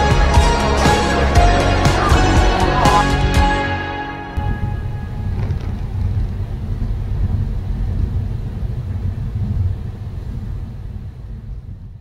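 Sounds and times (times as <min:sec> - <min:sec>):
car road rumble in tunnel: 0:03.5 - 0:12.0.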